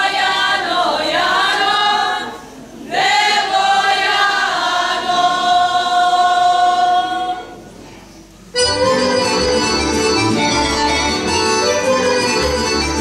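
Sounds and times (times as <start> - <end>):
women singing unaccompanied: 0.0 - 7.6.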